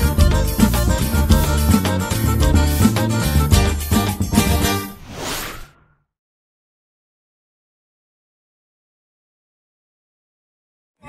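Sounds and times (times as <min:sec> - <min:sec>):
whoosh sound effect: 0:04.8 - 0:06.0.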